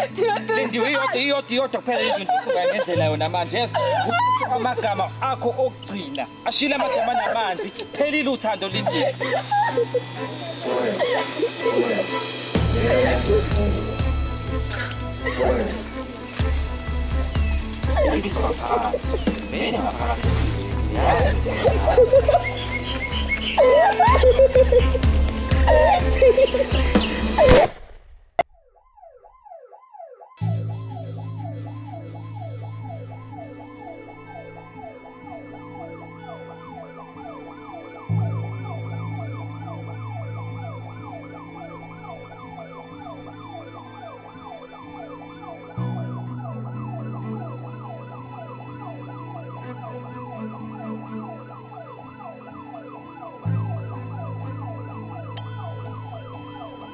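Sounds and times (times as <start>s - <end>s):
music with low held chords: 0.0s - 27.6s, 30.4s - 56.9s
siren cycling in pitch: 0.0s - 27.6s, 28.4s - 56.9s.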